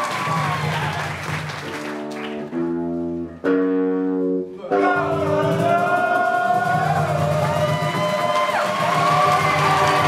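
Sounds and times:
crowd cheering: 0.0s - 2.5s, 5.1s - 10.0s
guitar accompaniment: 1.1s - 10.0s
group singing held notes: 4.7s - 7.6s.

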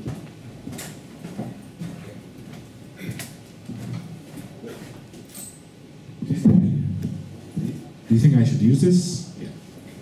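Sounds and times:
footsteps of man walking: 0.0s - 5.4s.

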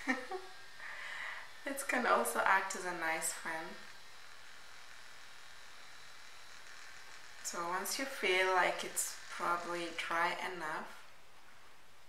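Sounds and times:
small motor buzzing: 0.0s - 12.0s.

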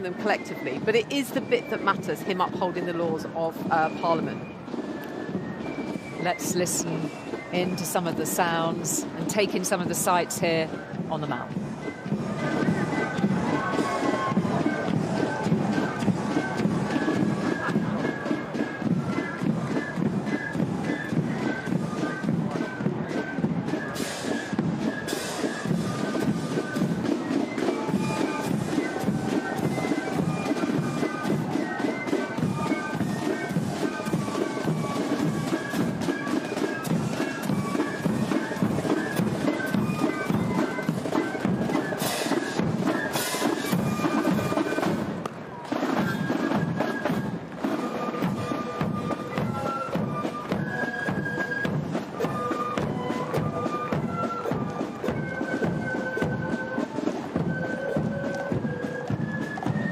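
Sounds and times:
shrill wind instrument melody: 0.0s - 59.9s
marching drum beat: 0.1s - 59.9s.

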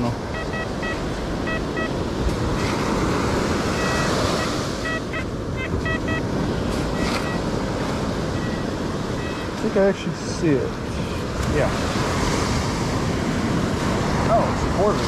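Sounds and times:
surf: 0.0s - 15.0s
wind: 0.0s - 15.0s
metal detector beeps: 0.3s - 2.0s, 3.7s - 7.5s, 8.3s - 9.6s.

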